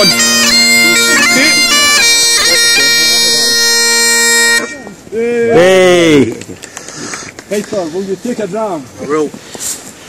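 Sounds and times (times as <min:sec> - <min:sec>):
bagpipe playing over drones: 0:00.0 - 0:05.0.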